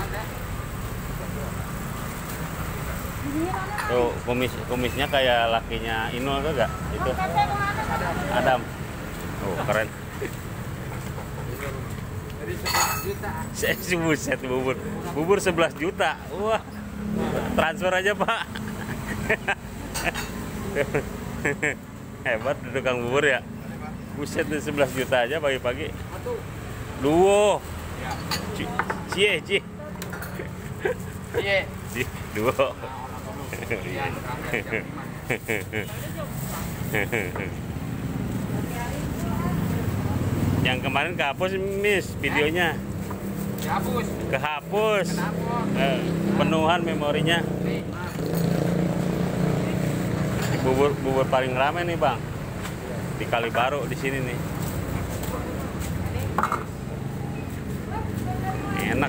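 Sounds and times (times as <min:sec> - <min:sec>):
road traffic hum: 0:00.0 - 0:59.0.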